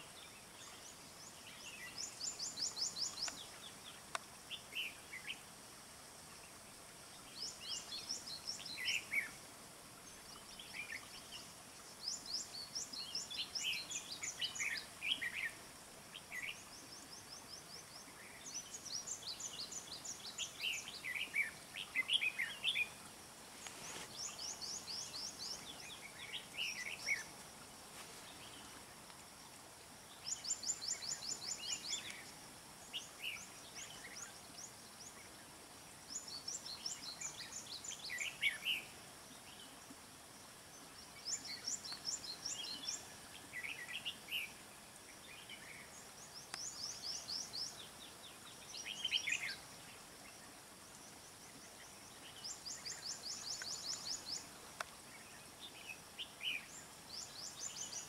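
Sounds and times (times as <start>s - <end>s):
faint steady hiss: 0.0s - 58.0s.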